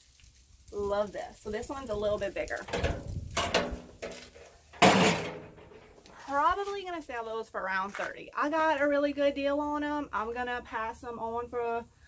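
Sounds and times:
metal tub knocking down: 2.7s - 6.0s.

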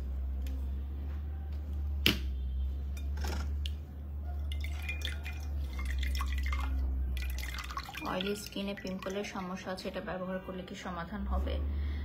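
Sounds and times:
water dripping into a bowl: 4.3s - 9.9s.

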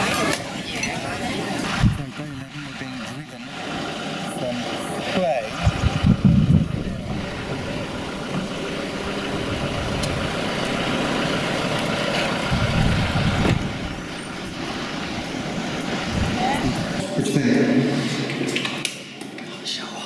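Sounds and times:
low rumbles: 0.0s - 19.2s
motor vehicle running: 0.0s - 19.4s
indistinct voices: 0.0s - 20.0s.

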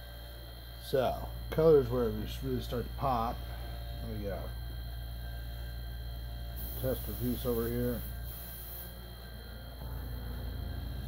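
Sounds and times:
steady low hum: 0.0s - 11.0s
airbrush spraying hiss: 6.5s - 9.2s.

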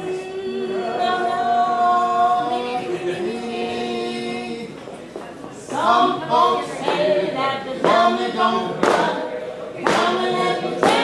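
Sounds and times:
voices singing held notes: 0.0s - 5.0s, 5.6s - 11.0s.

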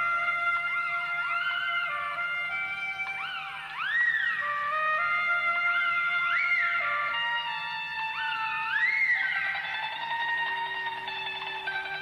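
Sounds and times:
instrumental music with held notes: 0.0s - 12.0s.

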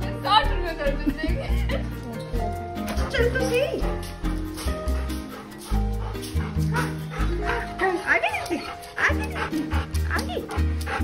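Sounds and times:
music with low sustained notes: 0.0s - 11.0s.

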